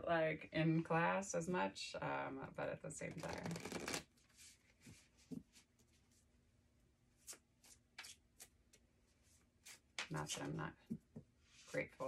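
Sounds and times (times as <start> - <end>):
cards being shuffled: 3.1 - 4.1, 7.2 - 8.8.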